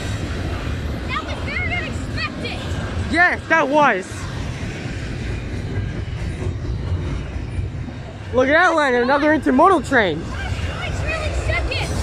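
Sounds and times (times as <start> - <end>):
freight train wheels rumbling: 0.0 - 12.0.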